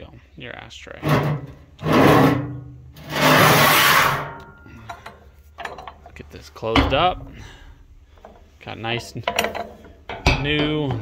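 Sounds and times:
metal pan scraping on metal: 1.0 - 4.4.

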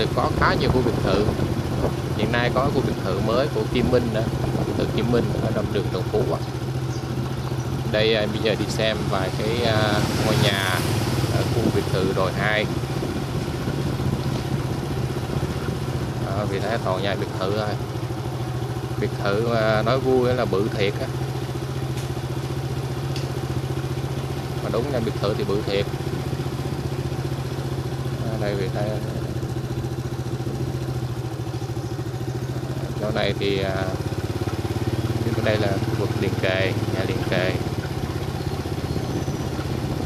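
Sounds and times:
small motorbike engine running: 0.0 - 40.0.

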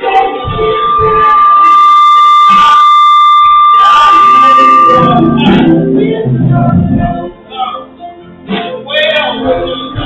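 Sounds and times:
person singing: 0.0 - 10.0
microphone feedback whistle: 0.1 - 5.8.

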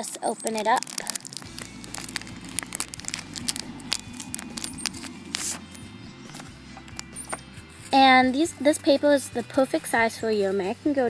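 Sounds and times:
plastic packaging crinkling: 0.0 - 5.7
background music: 0.3 - 11.0.

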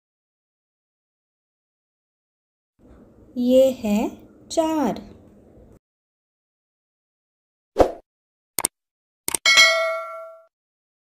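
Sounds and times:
bright bell ding: 9.5 - 10.5.

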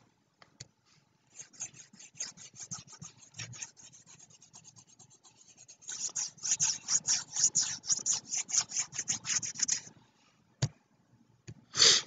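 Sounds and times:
stylus scratching on pen tablet: 1.3 - 9.9.

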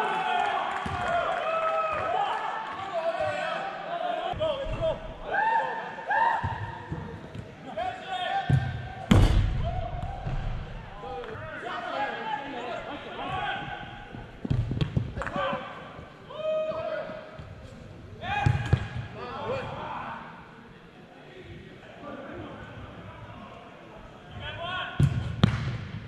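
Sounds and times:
soccer ball kicked thuds: 8.5 - 9.6.

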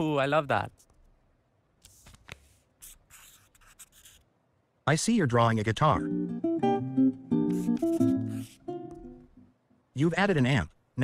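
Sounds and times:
acoustic guitar plucked notes: 5.9 - 9.4.

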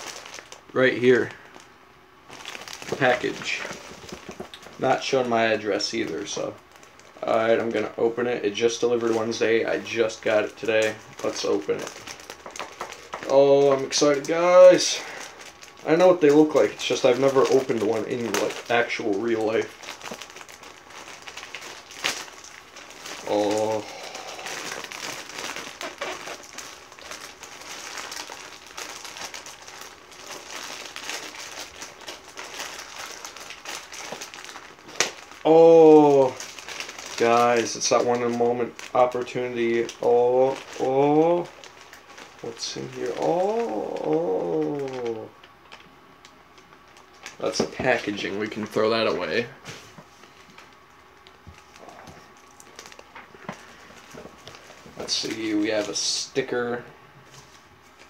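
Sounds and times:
plastic package crinkling: 0.0 - 49.5, 50.1 - 56.8
mailer rustling and tearing: 2.3 - 7.6, 8.5 - 45.3.

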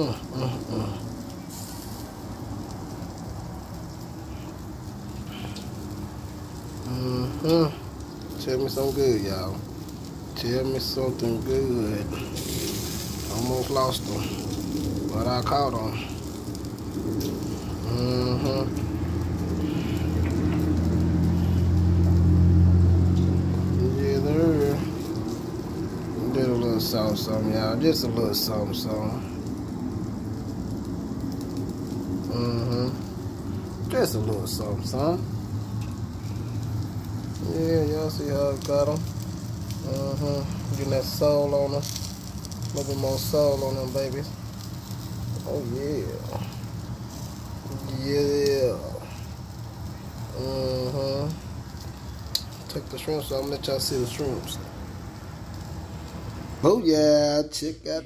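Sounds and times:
meat sizzling on a grill: 0.0 - 58.0.

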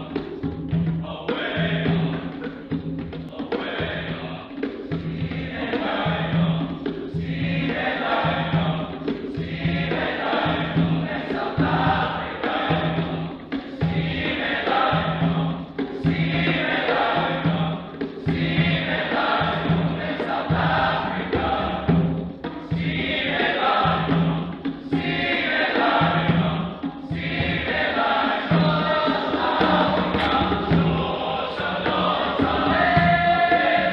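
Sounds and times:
male choir singing: 0.0 - 33.9.

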